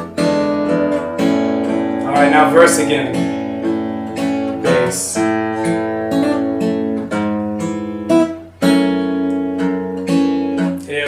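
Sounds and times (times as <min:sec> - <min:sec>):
finger-picked acoustic guitar: 0:00.0 - 0:11.0.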